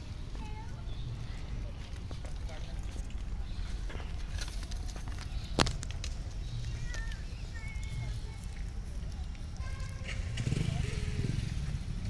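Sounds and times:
faint scattered clicks: 0:00.3 - 0:10.9.

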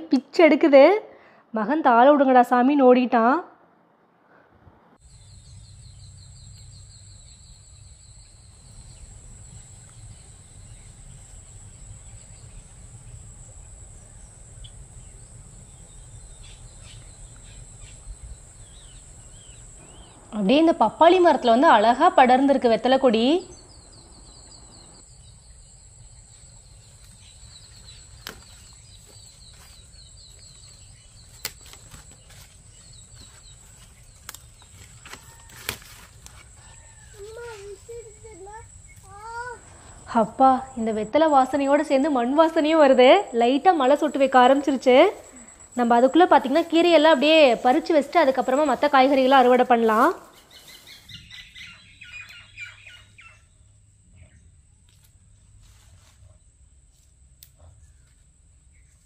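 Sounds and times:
bird chirping: 0:05.0 - 0:21.5, 0:22.5 - 0:35.4, 0:36.6 - 0:54.6.

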